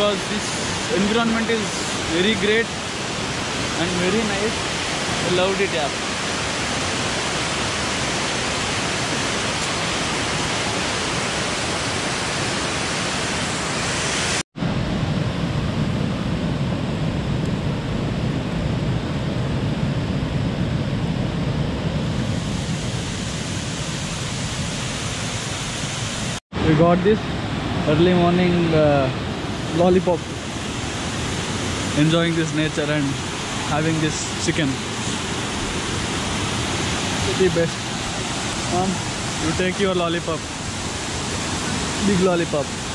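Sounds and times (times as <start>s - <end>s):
waterfall rushing: 0.0s - 15.0s, 22.1s - 42.9s.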